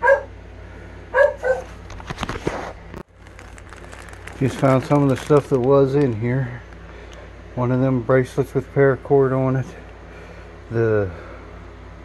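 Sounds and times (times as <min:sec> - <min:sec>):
dog barking: 0:00.0 - 0:00.4, 0:01.1 - 0:01.7
plastic packaging rustling: 0:01.6 - 0:07.3.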